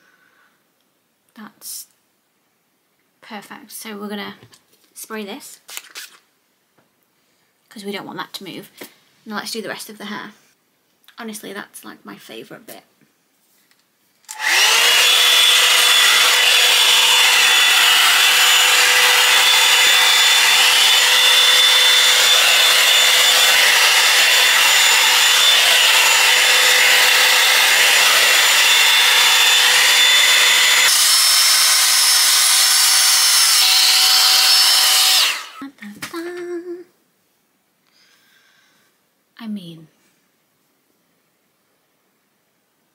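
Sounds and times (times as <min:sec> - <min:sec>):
hot-air brush motor whine: 0:14.3 - 0:35.6.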